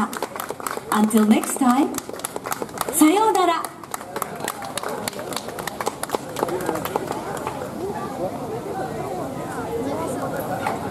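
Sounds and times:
scattered hand claps: 0.0 - 7.7
crowd chatter: 0.0 - 10.9.

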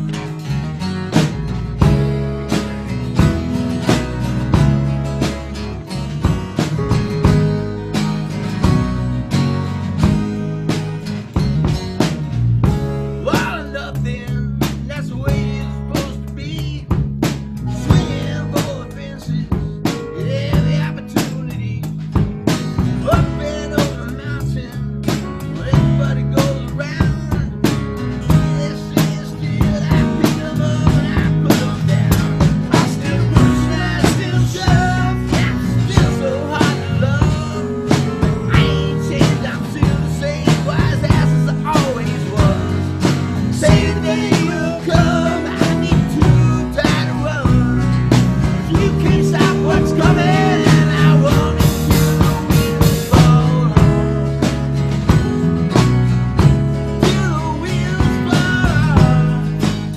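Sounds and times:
bass guitar: 0.0 - 59.9
drum kit beat: 0.0 - 59.9
strummed acoustic guitars: 0.0 - 59.9.

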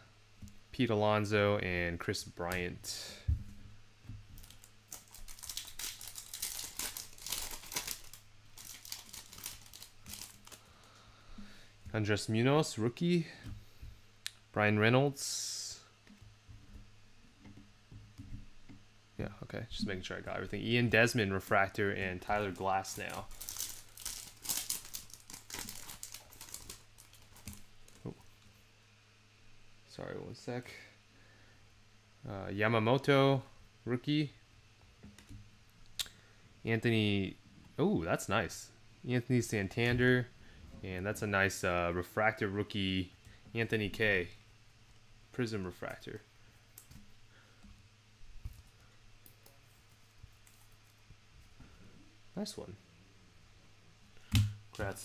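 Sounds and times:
foil wrapper crinkling and tearing: 4.4 - 10.7, 22.3 - 28.1.

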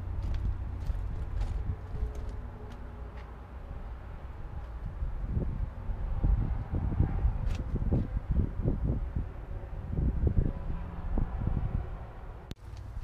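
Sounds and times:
wind buffeting microphone: 0.0 - 2.9, 3.6 - 13.0.

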